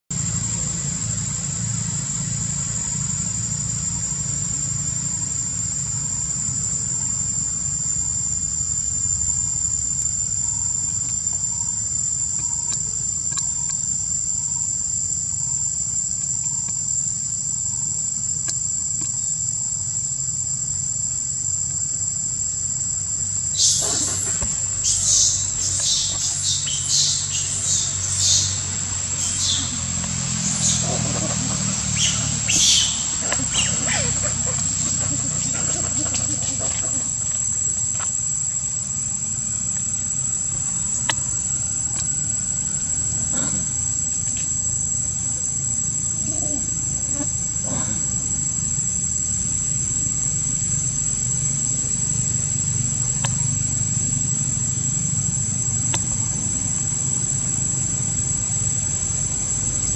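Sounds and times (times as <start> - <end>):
high-pitched insect drone: 0.1 - 59.9
low steady rumble: 0.1 - 59.9.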